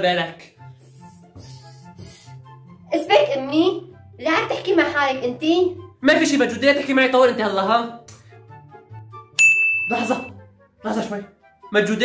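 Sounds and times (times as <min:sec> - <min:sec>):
faint background music: 0:00.0 - 0:12.0
bright bell ding: 0:09.4 - 0:10.3.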